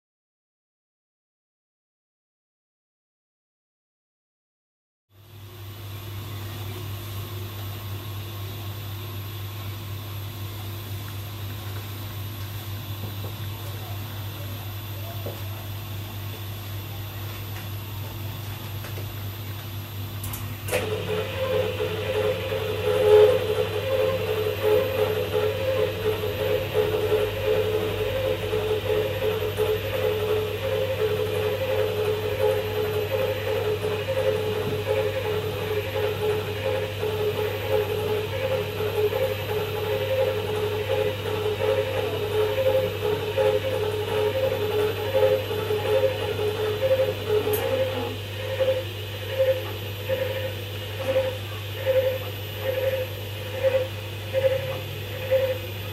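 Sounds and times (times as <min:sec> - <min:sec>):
pulsing stepper motor whine: 0:05.2 - 0:55.9
steady low hum: 0:05.2 - 0:55.9.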